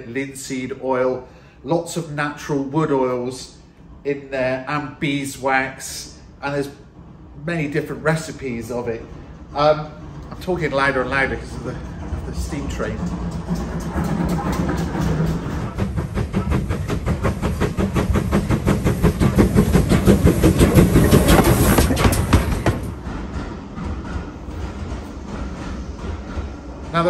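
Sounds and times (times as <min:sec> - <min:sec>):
steam locomotive on track: 0:00.0 - 0:27.0.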